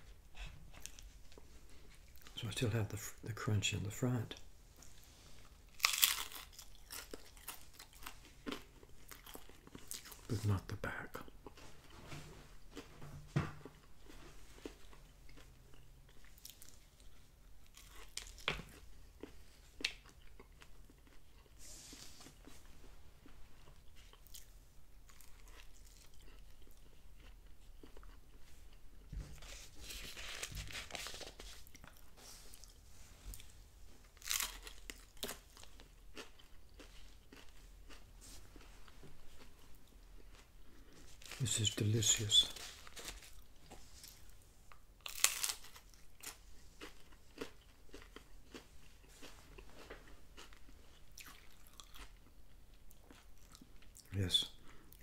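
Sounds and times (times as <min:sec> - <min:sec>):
quiet chewing: 0:00.0 - 0:02.4, 0:04.3 - 0:10.4, 0:13.6 - 0:41.6, 0:42.4 - 0:55.0
crunching taco shell: 0:05.7 - 0:10.2, 0:34.2 - 0:38.0, 0:45.0 - 0:48.7.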